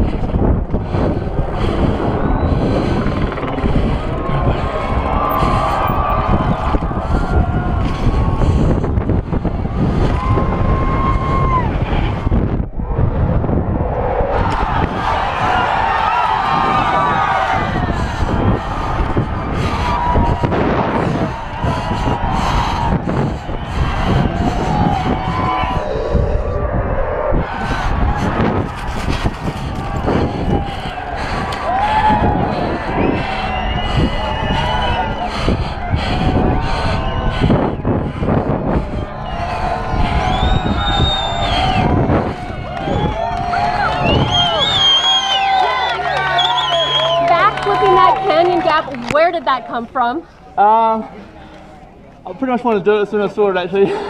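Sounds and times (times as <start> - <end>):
wind on microphone: 0.0 - 50.2.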